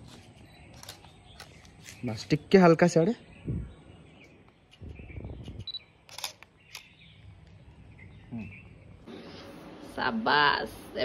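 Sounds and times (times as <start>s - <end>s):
camera shutter click: 5.6s - 7.0s.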